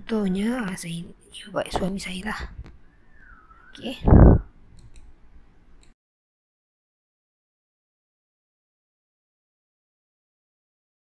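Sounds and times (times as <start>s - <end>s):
computer mouse clicks: 4.8s - 5.1s.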